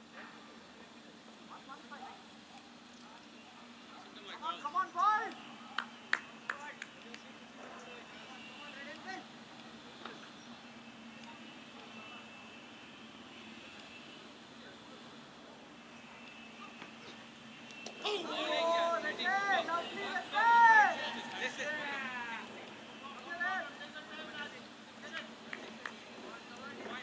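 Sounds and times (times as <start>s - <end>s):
steady low hum: 0.0s - 27.0s
hand claps: 5.3s - 7.3s, 25.1s - 26.0s
distant voice calling out: 17.9s - 24.1s.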